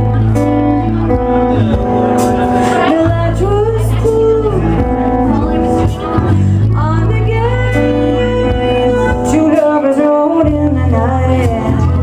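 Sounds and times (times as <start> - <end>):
electric guitar: 0.0 - 12.0
live pop band: 0.0 - 12.0
woman singing: 2.8 - 12.0.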